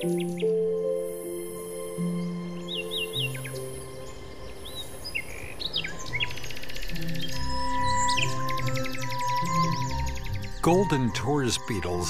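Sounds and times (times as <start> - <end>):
birds chirping: 0.0 - 12.0
soft background music: 0.0 - 12.0.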